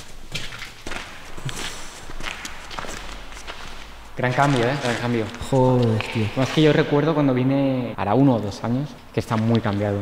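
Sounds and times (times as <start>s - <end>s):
footsteps on rubble: 0.0s - 6.9s.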